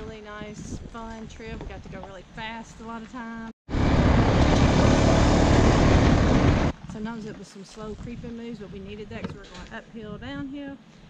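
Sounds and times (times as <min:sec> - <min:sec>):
engine rushing noise: 0:03.7 - 0:06.8.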